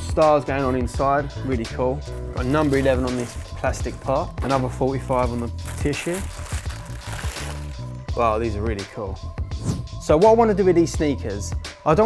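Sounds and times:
background music: 0:00.0 - 0:12.0
tissue paper rustling: 0:02.0 - 0:08.0.

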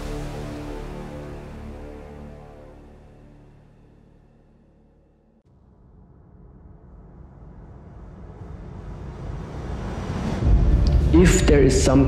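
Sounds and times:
deep bass rumble: 0:06.5 - 0:12.0
noisy riser swell: 0:07.3 - 0:11.9.

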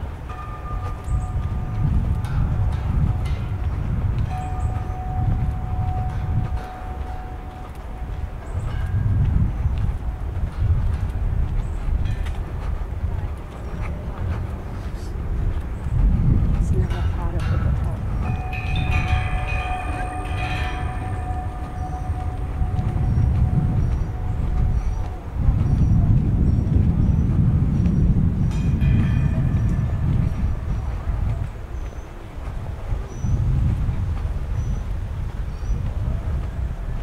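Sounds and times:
wind buffeting microphone: 0:00.0 - 0:37.0
passers-by talking: 0:12.5 - 0:26.4.

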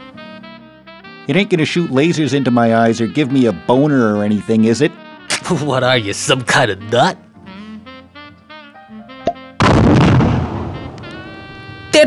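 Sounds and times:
loud bang: 0:09.6 - 0:11.4.

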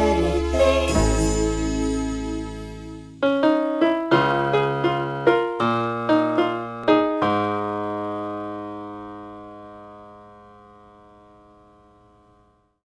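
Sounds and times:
ringing keyboard chord: 0:00.2 - 0:12.8.

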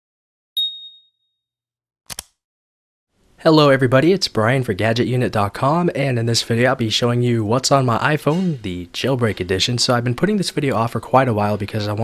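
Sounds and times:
bright chime ding: 0:00.6 - 0:01.2.

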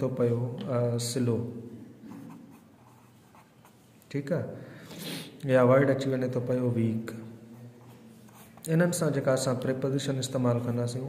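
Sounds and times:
pen scratching on paper: 0:02.1 - 0:03.8.

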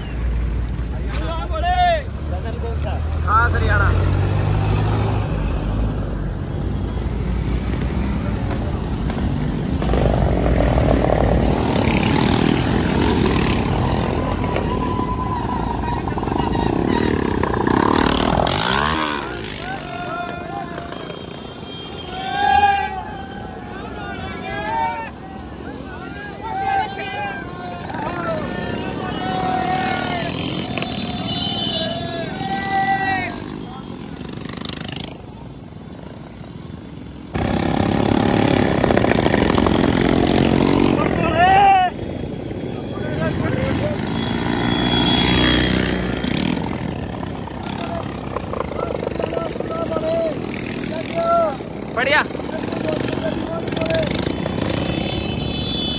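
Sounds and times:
motorcycle engines: 0:00.0 - 0:55.9
road noise: 0:00.0 - 0:55.9.

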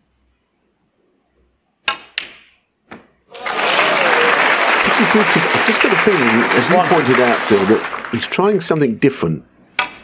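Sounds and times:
snooker balls clicking: 0:01.8 - 0:03.2
audience applause: 0:03.3 - 0:08.8.

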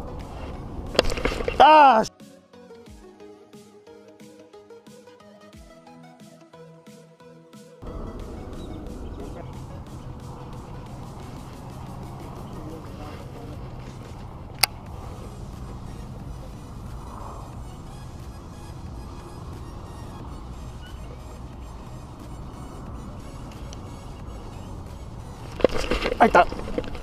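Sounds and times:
boat motor humming: 0:00.0 - 0:02.0, 0:07.8 - 0:27.0.

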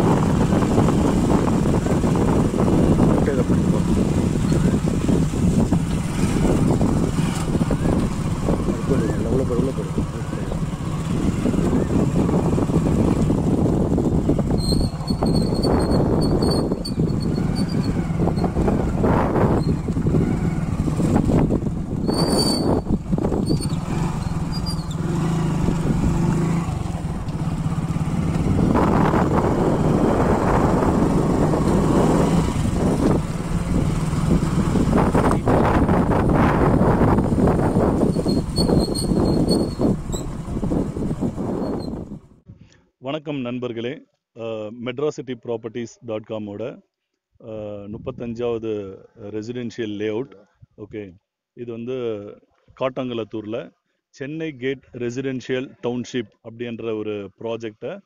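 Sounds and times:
vehicle engine humming: 0:00.0 - 0:42.4
people talking: 0:03.1 - 0:03.7, 0:08.7 - 0:10.6, 0:43.0 - 0:46.8, 0:47.4 - 0:58.0.

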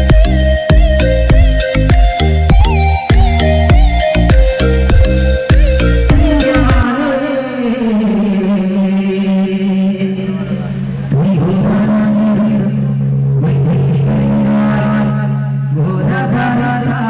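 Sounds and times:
man singing through public address: 0:06.4 - 0:17.0.

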